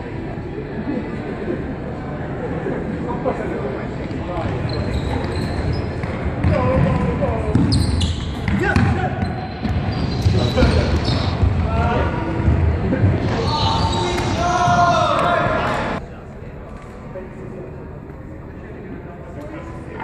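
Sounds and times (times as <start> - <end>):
shoes squeaking on wooden floor: 4.6 - 6.6, 7.6 - 8.4, 9.2 - 11.5
players calling out: 6.4 - 16.0.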